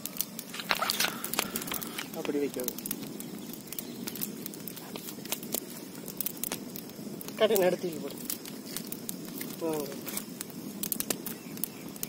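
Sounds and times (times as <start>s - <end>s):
wood fire crackling and popping: 0.0s - 12.0s.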